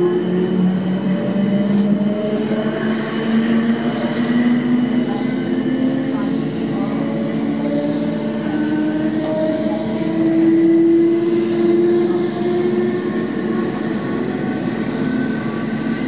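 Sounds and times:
train running gear rumble: 0.0 - 16.0.

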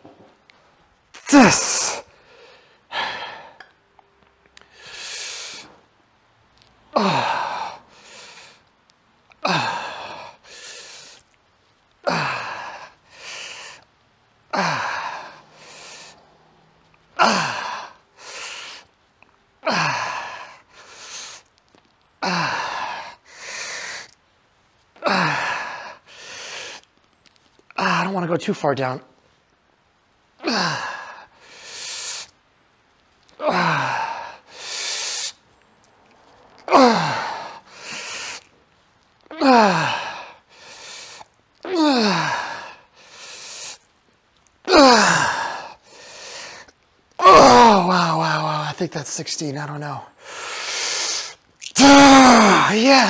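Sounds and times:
man breathing hard: 1.2 - 3.7, 4.6 - 5.8, 6.9 - 8.7, 9.4 - 11.4, 12.0 - 13.9, 14.5 - 16.3, 17.2 - 19.0, 19.6 - 21.5, 22.2 - 24.2, 25.0 - 26.9, 30.4 - 32.4, 33.4 - 35.4, 36.7 - 38.6, 39.4 - 43.9, 44.7 - 46.7, 50.1 - 53.0.

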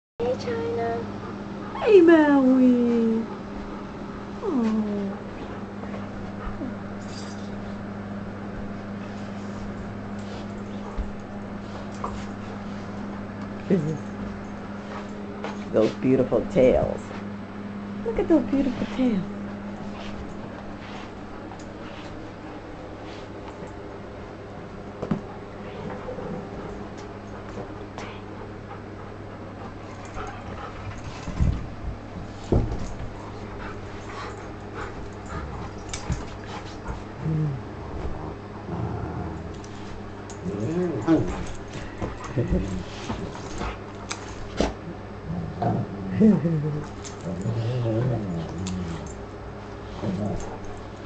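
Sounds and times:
low hum: 0.2 - 51.0
paws scuffling on bedding: 8.5 - 13.4, 18.4 - 23.6
dogs panting: 25.2 - 37.2, 39.6 - 45.0
dogs scuffling: 29.7 - 37.2
dogs snuffling: 39.5 - 44.9.

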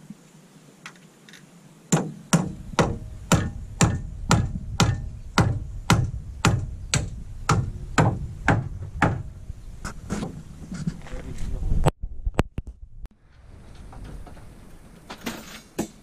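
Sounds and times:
hammer blows on wooden timber: 1.9 - 10.5.

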